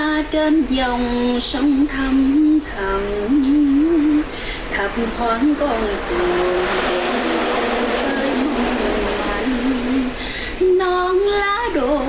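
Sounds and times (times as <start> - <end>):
steady rushing hiss: 0.0 - 12.0
woman singing unaccompanied: 0.0 - 12.0.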